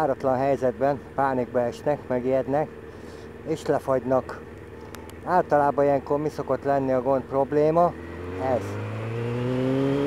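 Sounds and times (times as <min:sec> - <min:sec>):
motorcycle engine accelerating: 0:02.1 - 0:10.0.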